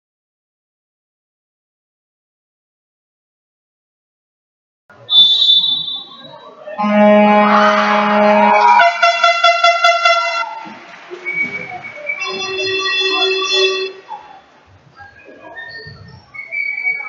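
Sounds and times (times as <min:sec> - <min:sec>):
long horn-like tones: 0:06.8 - 0:10.7, 0:12.2 - 0:14.1.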